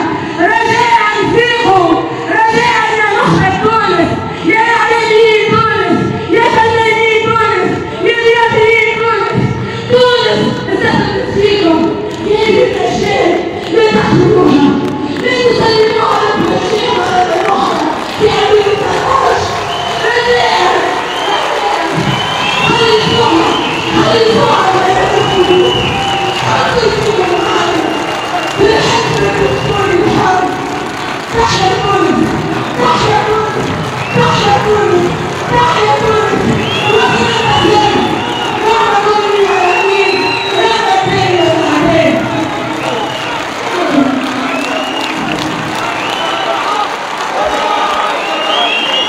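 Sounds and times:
crowd cheering and chanting: 0:00.0 - 0:49.0.

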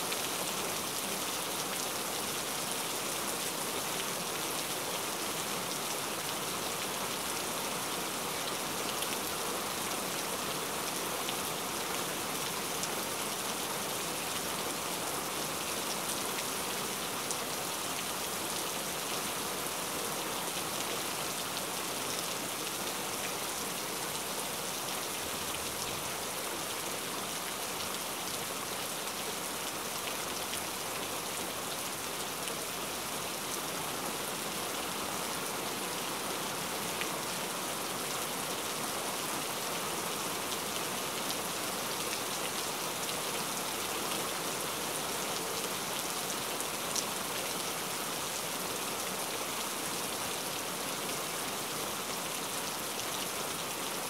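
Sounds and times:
steady rain hiss: 0:00.0 - 0:54.0.

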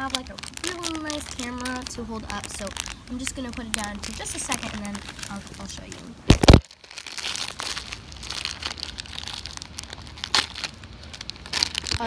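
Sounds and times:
foil packet crinkling and tearing: 0:00.0 - 0:12.0.

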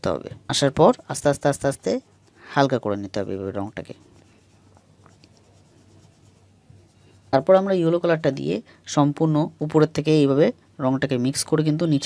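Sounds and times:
oil pastel scratching on paper: 0:00.5 - 0:08.0.

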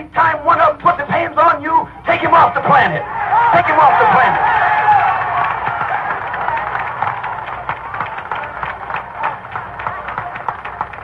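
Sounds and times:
crowd applauding and cheering: 0:03.1 - 0:11.0.

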